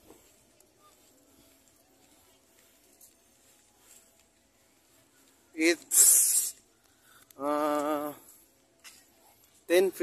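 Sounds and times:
person hissing: 5.9 - 6.5.

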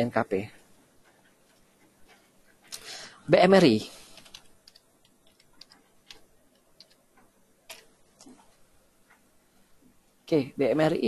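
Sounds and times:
keyboard typing clicks: 4.1 - 8.5.

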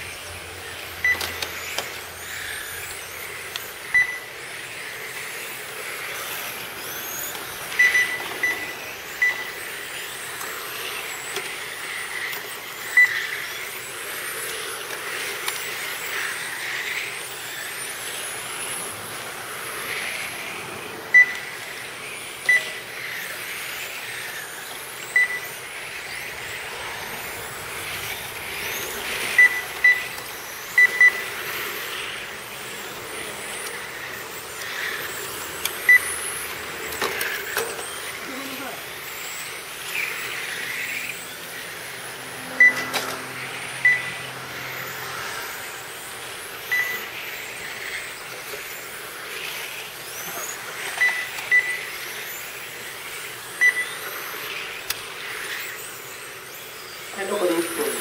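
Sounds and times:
electric motors whining: 0.0 - 58.0.

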